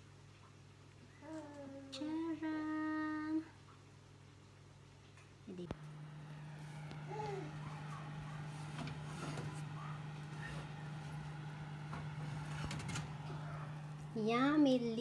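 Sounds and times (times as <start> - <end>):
oven fan humming: 5.6 - 15.0.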